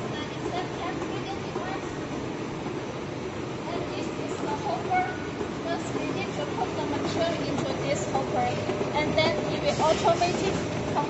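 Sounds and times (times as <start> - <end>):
indistinct voices talking: 0.0 - 11.0
packaging machines running: 0.0 - 11.0.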